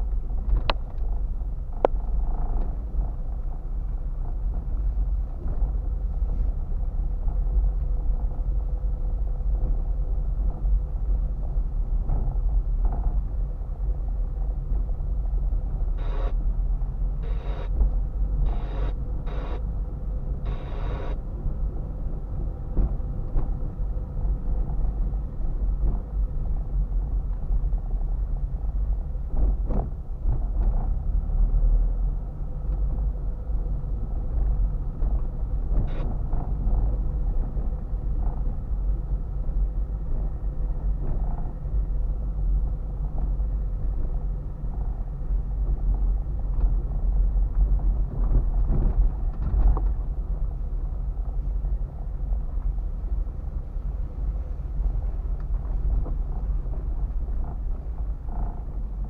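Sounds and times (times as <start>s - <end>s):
car engine and tyre rumble: 0.0s - 59.0s
short bursts of higher noise: 16.0s - 16.4s, 17.2s - 17.8s, 18.5s - 19.6s, 20.5s - 21.2s.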